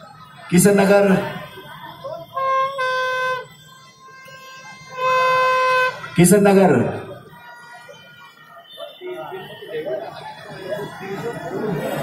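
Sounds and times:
low crowd din: 0.0s - 12.0s
horn blowing long brassy note: 2.4s - 3.5s, 4.2s - 6.1s.

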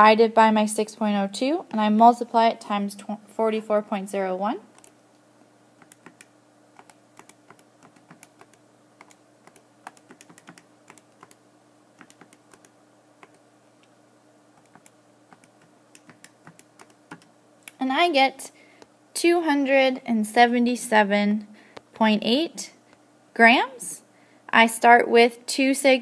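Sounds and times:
calculator keys clicking: 5.8s - 11.4s, 12.0s - 13.4s, 14.6s - 17.3s.

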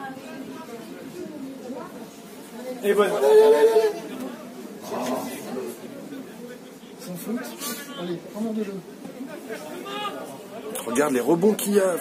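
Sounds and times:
man speaking close up: 9.5s - 12.0s.

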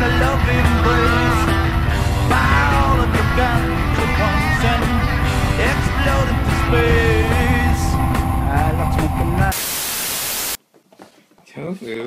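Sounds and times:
song with singing: 0.0s - 9.6s
white-noise static burst: 9.5s - 10.6s.

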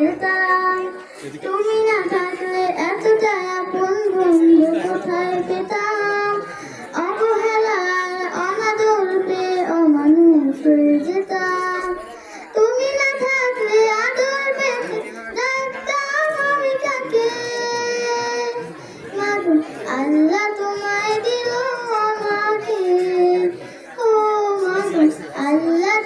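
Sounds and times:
girl singing into a microphone: 0.0s - 26.0s.

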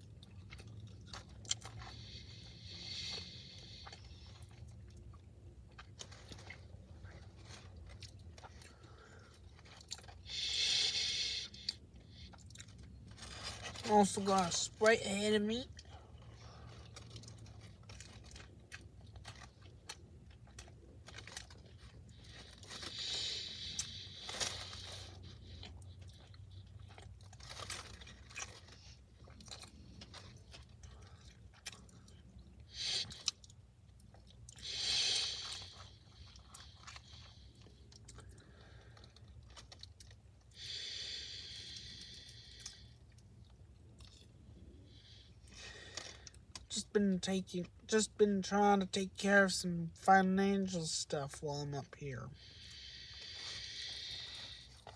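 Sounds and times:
crunchy chewing: 0.0s - 14.2s, 15.7s - 46.7s, 52.4s - 54.9s.

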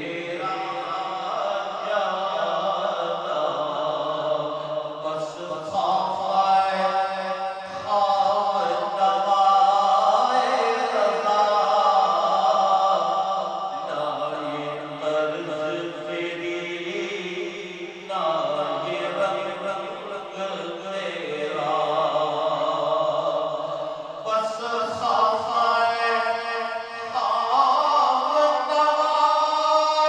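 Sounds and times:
man chanting devotional poetry: 0.0s - 30.0s.

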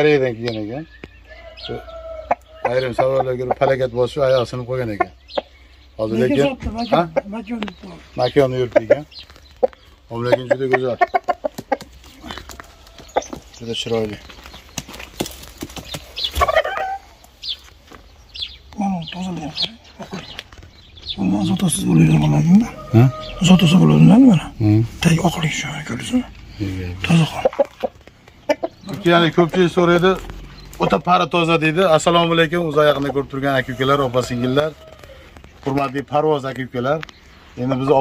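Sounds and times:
rooster clucking: 1.3s - 3.8s, 4.8s - 7.6s, 8.5s - 13.4s, 16.3s - 17.2s, 21.3s - 25.1s, 27.0s - 29.9s.

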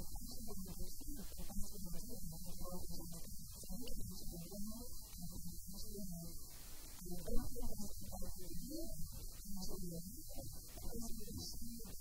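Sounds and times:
electrical hum: 0.0s - 12.0s
woman talking: 0.0s - 12.0s.

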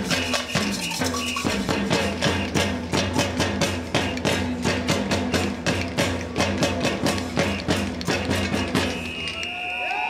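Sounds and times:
crowd striking wooden claves: 0.0s - 10.0s.

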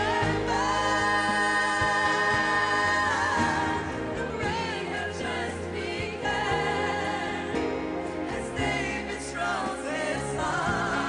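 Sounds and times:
women singing gospel song: 0.0s - 11.0s.

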